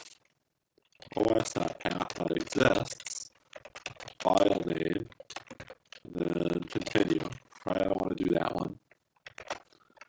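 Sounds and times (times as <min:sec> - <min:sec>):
keyboard typing: 0:00.8 - 0:10.0
person speaking: 0:01.0 - 0:03.0, 0:04.2 - 0:05.1, 0:06.0 - 0:08.8.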